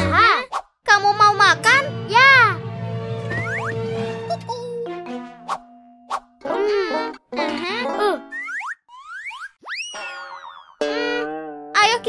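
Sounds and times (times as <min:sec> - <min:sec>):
held musical chord: 0:01.0 - 0:06.0
upward whistle-like glides: 0:03.3 - 0:03.8.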